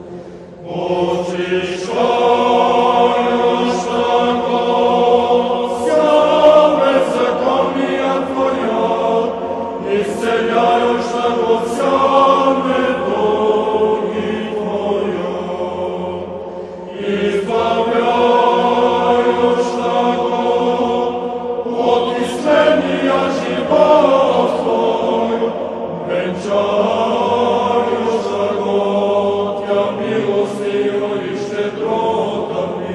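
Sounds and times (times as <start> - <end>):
choir singing a chant: 0.0 - 32.9.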